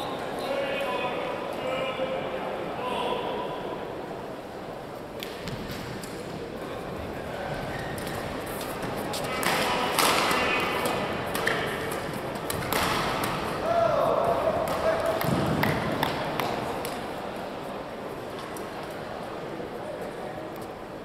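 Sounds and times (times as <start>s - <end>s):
racket hitting shuttlecock: 9.3s - 13.6s, 14.5s - 17.0s.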